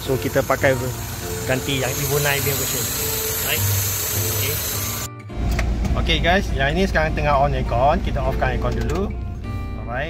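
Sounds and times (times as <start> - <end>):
car engine idling: 0.0 - 8.8.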